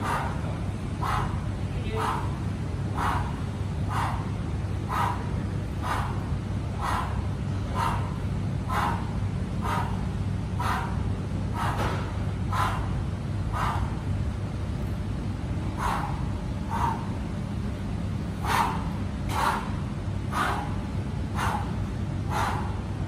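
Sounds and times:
sharp exhaled breaths: 0.0s - 14.1s, 15.6s - 17.3s, 18.4s - 23.0s
ventilation hum: 0.0s - 23.0s.

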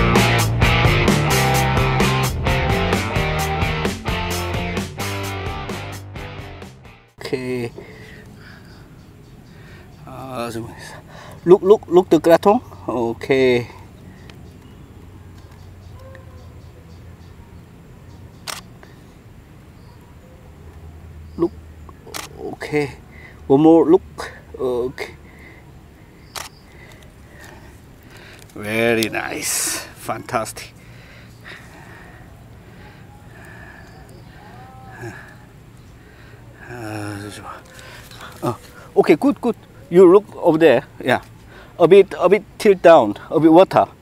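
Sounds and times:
low outdoor background noise: 7.1s - 44.0s
camera shutter click: 18.4s - 18.7s, 22.1s - 22.4s, 26.3s - 26.6s
faint distant call: 30.7s - 40.2s.

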